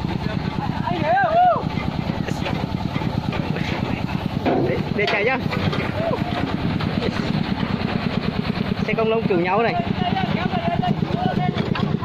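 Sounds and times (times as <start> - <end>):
diesel tractor engine running: 0.0 - 12.0.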